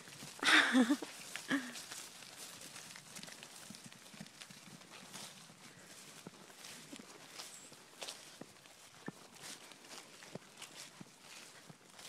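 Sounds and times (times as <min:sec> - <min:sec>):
hoofbeats on grass: 0:00.0 - 0:12.0.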